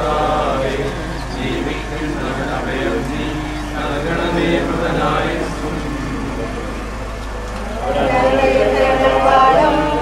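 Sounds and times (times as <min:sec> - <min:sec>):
indistinct crowd voices: 0:00.0 - 0:10.0
steady low hum: 0:00.0 - 0:10.0.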